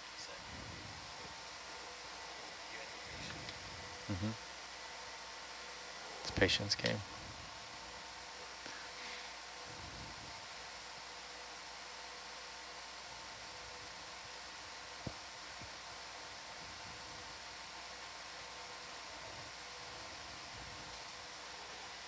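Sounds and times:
faint steady hum: 0:00.0 - 0:22.0
steady hiss: 0:00.0 - 0:22.0.

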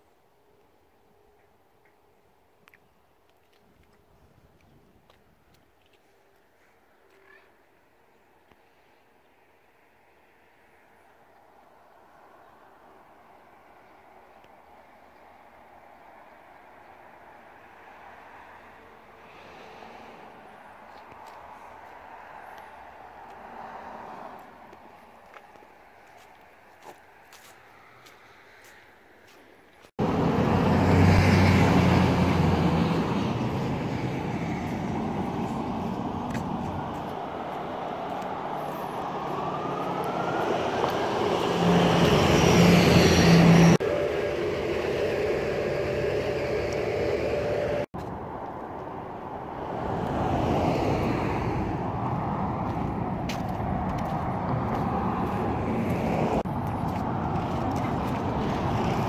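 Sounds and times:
cars passing: 0:08.7 - 0:59.0.

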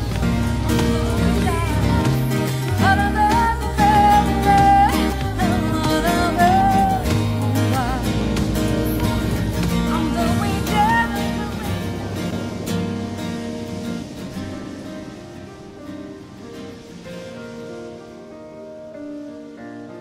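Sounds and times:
woman singing wordless notes: 0:00.0 - 0:12.5
pop ballad band: 0:00.0 - 0:14.7.

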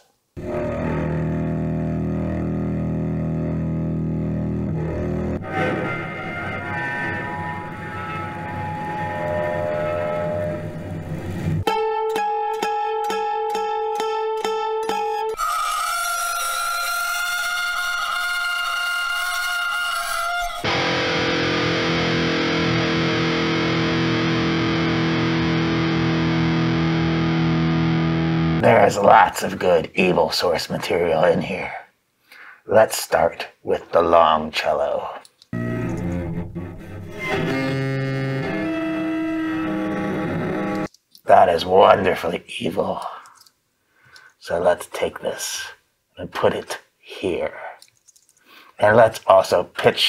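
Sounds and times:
bowed cello: 0:35.6 - 0:40.9.

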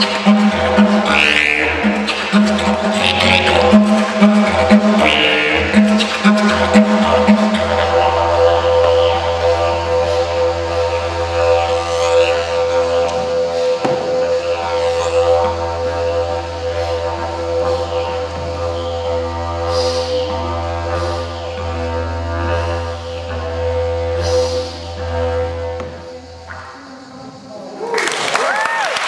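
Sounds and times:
didgeridoo drone: 0:00.0 - 0:27.9
short hissing accents: 0:19.5 - 0:21.5, 0:22.6 - 0:27.9.

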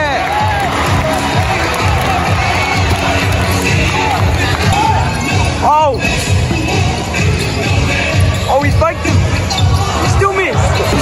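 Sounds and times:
arena music: 0:00.0 - 0:11.0.

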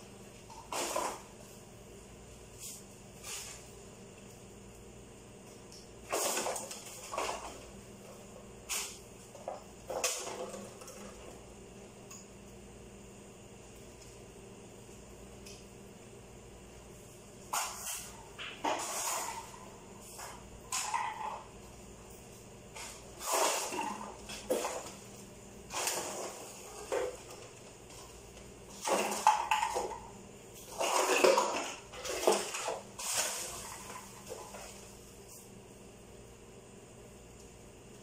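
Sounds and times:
mop swishing on hard floor: 0:25.7 - 0:27.4.

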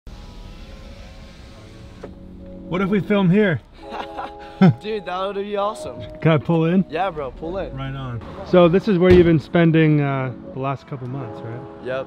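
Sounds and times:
car road and engine noise: 0:00.1 - 0:03.8, 0:05.3 - 0:09.9.

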